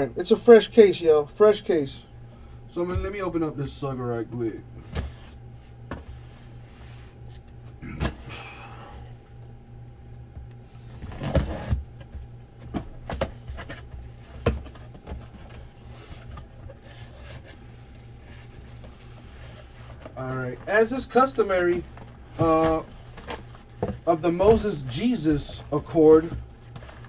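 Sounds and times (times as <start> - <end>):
cardboard scraping and knocking: 11.0 - 17.6, 21.0 - 27.0.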